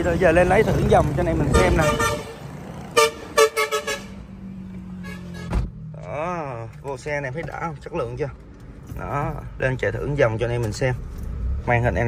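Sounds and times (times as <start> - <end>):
car horns honking: 1.3 - 5.8.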